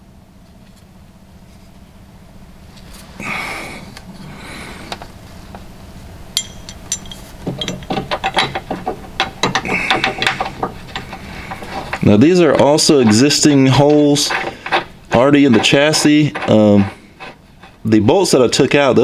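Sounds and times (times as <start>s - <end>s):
metal bolts clicking and clinking: 6.4s - 17.8s
scraping rustle: 7.0s - 19.0s.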